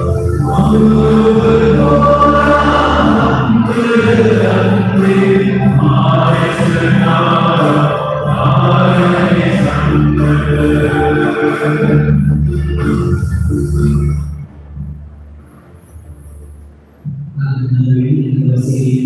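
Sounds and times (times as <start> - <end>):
choir singing a hymn: 0.0 - 13.3.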